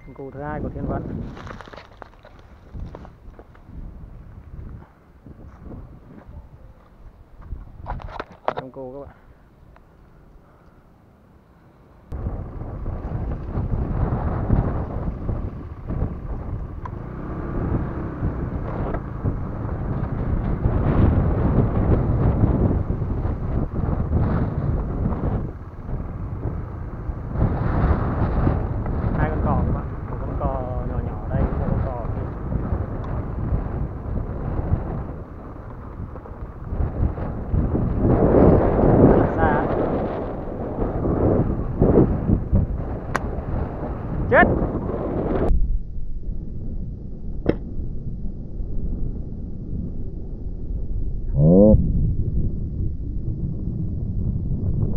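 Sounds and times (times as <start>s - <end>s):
wind buffeting microphone: 0.0s - 10.8s, 12.0s - 54.9s.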